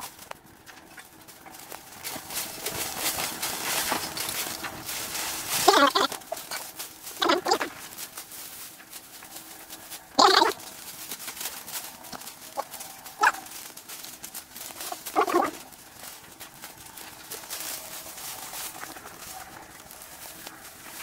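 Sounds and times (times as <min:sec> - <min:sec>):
dog barking: 0:13.2 - 0:13.5.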